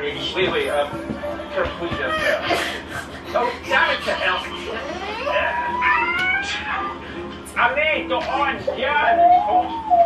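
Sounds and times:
high wailing cry: 3.7 - 7.0.

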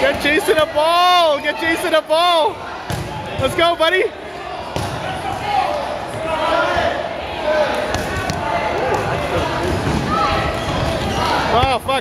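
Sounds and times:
players shouting and cheering: 0.0 - 12.0.

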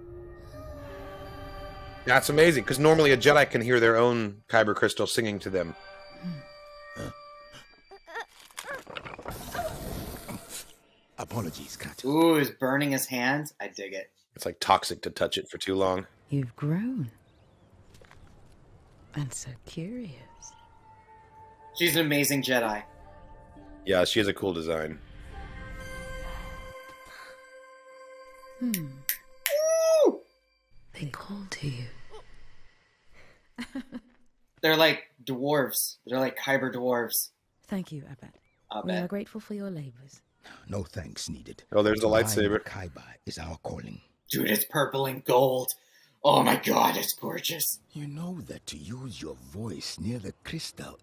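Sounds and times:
faint sustained musical tone: 0.0 - 8.0, 20.0 - 29.4
sustained ringing tones: 5.2 - 8.1
high voice calling woo: 28.8 - 30.3.

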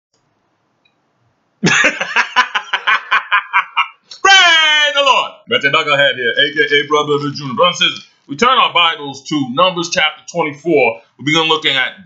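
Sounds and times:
man laughing: 1.6 - 4.9.

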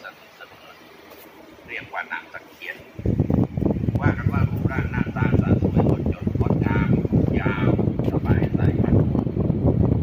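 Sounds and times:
person speaking: 1.6 - 3.2.

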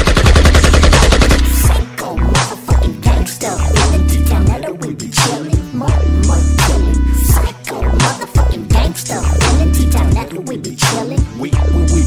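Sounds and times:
machine-gun fire: 0.0 - 1.8
hip hop beat: 0.0 - 12.0.

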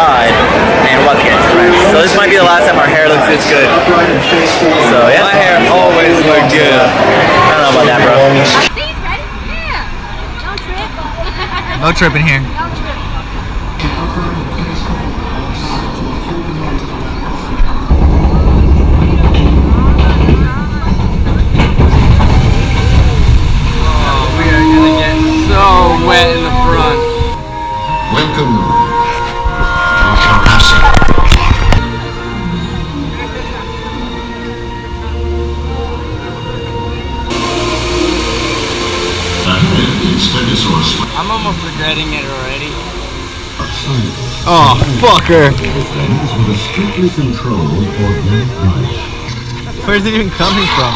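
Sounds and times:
boat rumbling along water flume: 0.0 - 27.7, 35.0 - 50.6
rushing water hiss: 21.9 - 27.4, 37.3 - 47.5.

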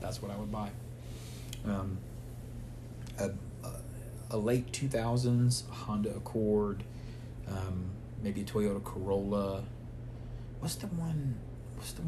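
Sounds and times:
man speaking: 0.0 - 0.8, 1.6 - 2.1
steady low hum: 0.0 - 12.0.

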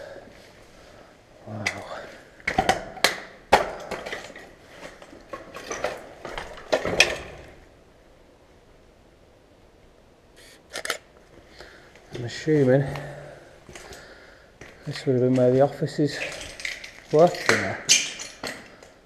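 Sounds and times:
footsteps crunching over rubble: 1.6 - 7.6, 11.3 - 19.0.

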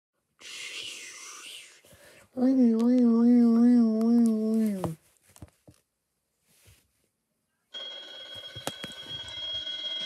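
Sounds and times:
person whispering: 0.4 - 5.0.

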